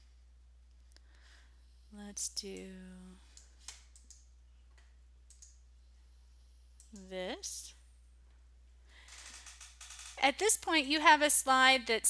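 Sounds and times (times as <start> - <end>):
computer mouse clicks: 3.4 - 4.2, 4.8 - 5.6.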